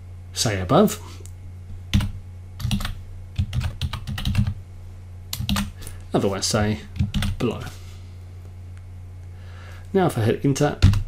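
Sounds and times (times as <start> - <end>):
steady low hum: 0.0 - 11.0
keyboard typing: 1.9 - 4.6, 5.3 - 5.7, 7.0 - 7.4.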